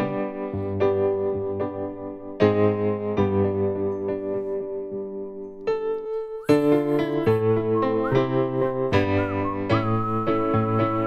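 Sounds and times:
upright piano waltz chords: 0:00.0 - 0:11.0
man whistling: 0:05.8 - 0:11.0.

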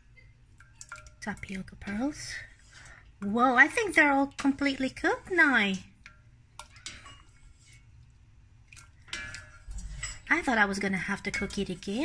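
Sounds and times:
spoon stirring in pot of water: 0:00.0 - 0:12.0.

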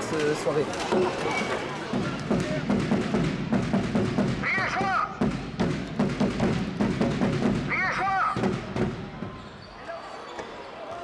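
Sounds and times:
spectators and players shouting: 0:07.7 - 0:11.0.

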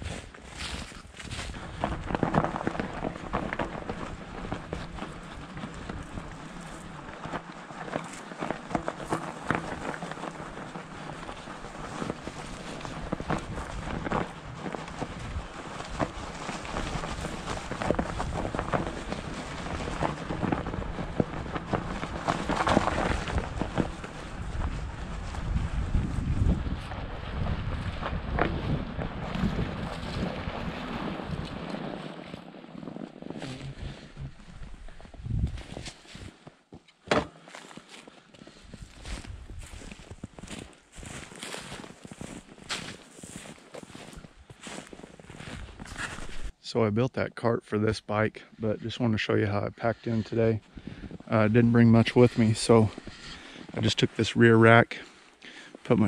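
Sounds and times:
bike tires crunching on snow: 0:00.0 - 0:56.0
wind buffeting microphone: 0:11.9 - 0:31.8, 0:33.4 - 0:35.9, 0:38.6 - 0:41.2.

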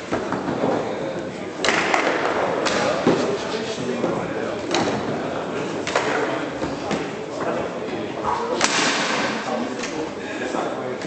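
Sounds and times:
chatter in echoing hall: 0:00.0 - 0:11.0.

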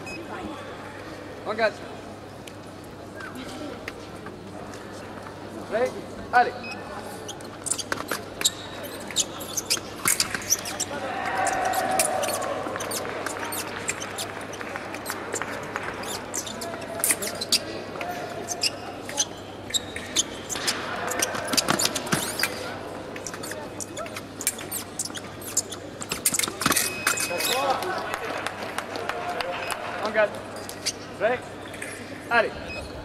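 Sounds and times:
shoe squeaks: 0:06.6 - 0:27.8, 0:30.5 - 0:33.0.

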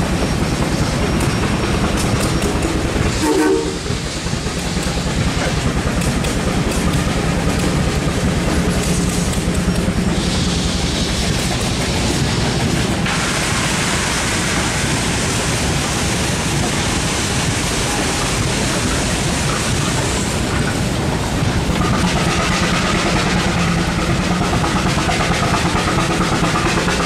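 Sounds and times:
steam engine rumble: 0:00.0 - 0:27.0
steam hissing: 0:00.0 - 0:27.0.

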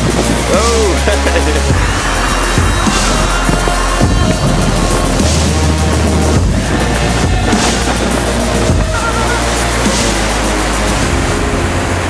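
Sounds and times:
background music: 0:00.0 - 0:12.0
waterfall rushing: 0:00.0 - 0:12.0.

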